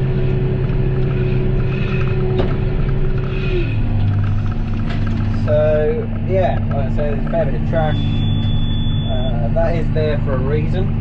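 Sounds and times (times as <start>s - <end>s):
steady whine: 0.0s - 11.0s
tractor engine running under load: 0.0s - 11.0s.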